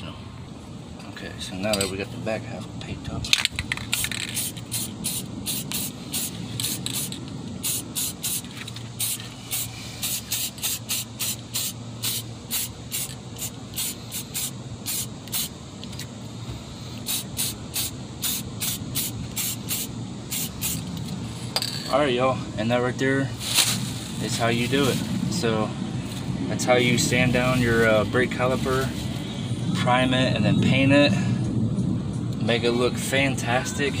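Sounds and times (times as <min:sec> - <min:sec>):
spray paint hissing bursts: 0:03.7 - 0:15.6, 0:16.8 - 0:21.0.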